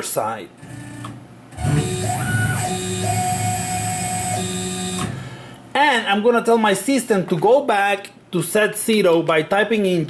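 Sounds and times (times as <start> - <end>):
stepper motors whining: 1.5 - 5.2.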